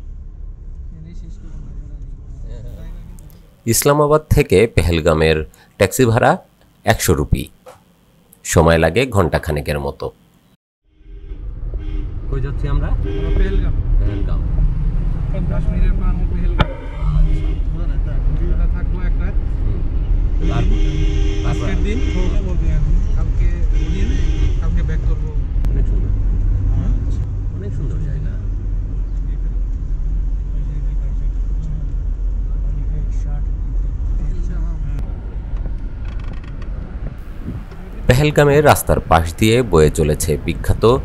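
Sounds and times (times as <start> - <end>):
car engine and road rumble inside: 0.0 - 3.6, 11.3 - 20.4, 21.6 - 39.0.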